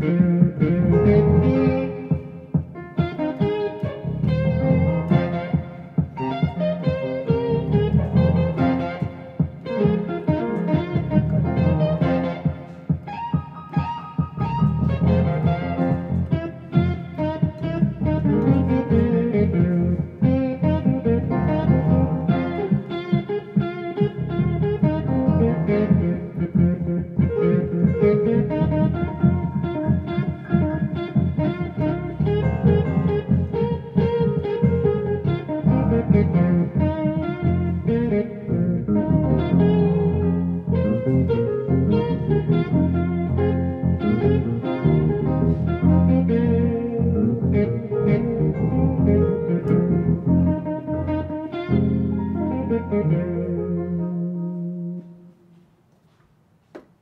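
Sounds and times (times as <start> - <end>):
funk synthesizer keyboard jam: 0.0 - 55.4.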